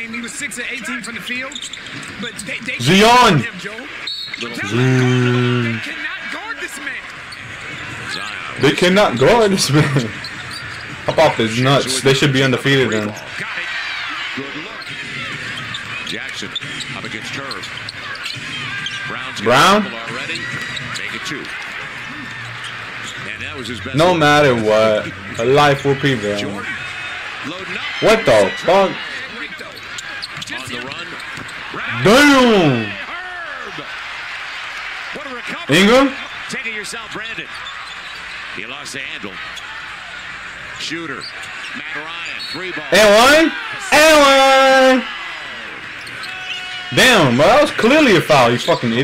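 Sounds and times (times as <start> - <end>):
arena crowd noise: 0.0 - 49.0
commentator speaking: 2.2 - 10.2, 11.1 - 13.6, 19.1 - 21.3, 23.2 - 26.8, 27.5 - 29.7, 30.4 - 33.1, 35.2 - 37.6, 40.8 - 45.1, 46.9 - 49.0.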